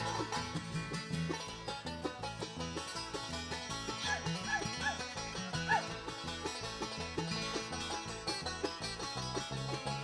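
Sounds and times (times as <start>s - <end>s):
acoustic guitar: 0.0s - 10.0s
banjo picking: 0.0s - 10.0s.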